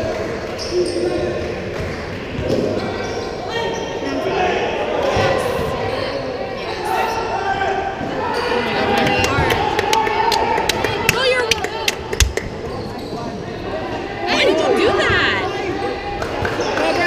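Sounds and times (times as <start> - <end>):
people calling out in gym: 2.8 - 17.0.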